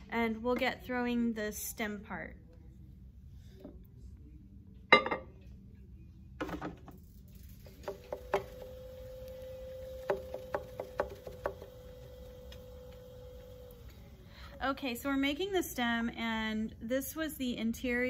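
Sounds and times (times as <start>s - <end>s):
potter's wheel motor humming: 7.5s - 14.7s.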